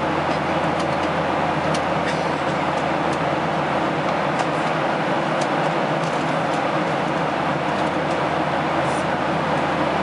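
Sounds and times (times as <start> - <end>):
jet cabin engine roar: 0.0 - 10.0.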